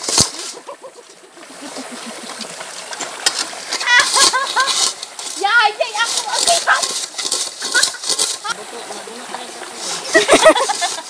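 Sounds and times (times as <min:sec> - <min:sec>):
splashing river water: 0:00.0 - 0:11.0.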